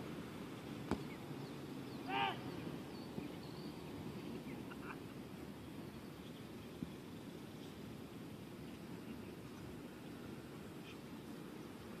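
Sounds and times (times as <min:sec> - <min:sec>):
faint bird chirps: 0:00.9 - 0:05.0
short bird call: 0:02.0 - 0:02.7.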